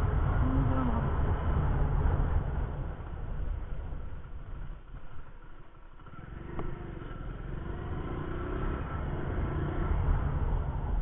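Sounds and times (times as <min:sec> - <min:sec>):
motorcycle running at low speed: 0:00.0 - 0:11.0.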